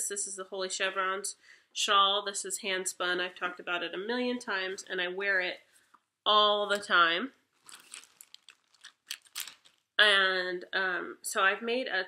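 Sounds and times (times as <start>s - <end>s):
yarn rustling: 7.5s - 9.9s
knitting needles clicking: 7.6s - 9.8s.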